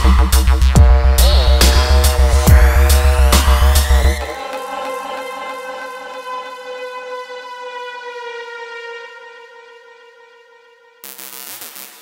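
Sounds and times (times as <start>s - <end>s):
siren-like synthesizer tone: 0.8s - 11.6s.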